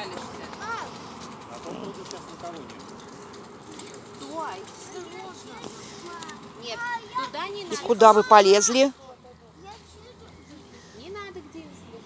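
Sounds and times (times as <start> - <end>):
outdoor background noise: 0.0 - 12.0
people talking: 4.2 - 8.9.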